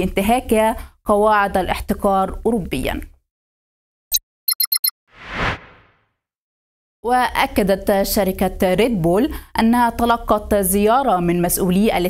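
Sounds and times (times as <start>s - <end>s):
whoosh: 5.2s - 6.0s.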